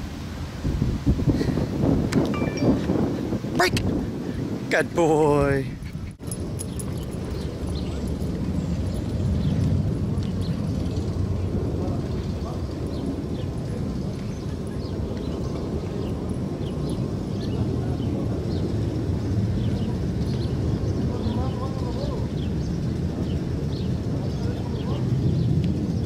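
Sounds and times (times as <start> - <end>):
wind buffeting microphone: 0.0 - 26.0
faint high chirps: 2.3 - 2.9.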